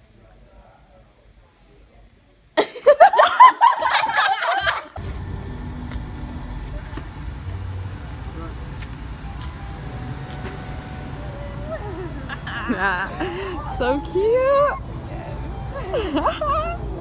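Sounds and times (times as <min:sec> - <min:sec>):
faint voices: 0:05.0 - 0:17.0
steady low rumble: 0:05.0 - 0:17.0
lively talk: 0:06.5 - 0:17.0.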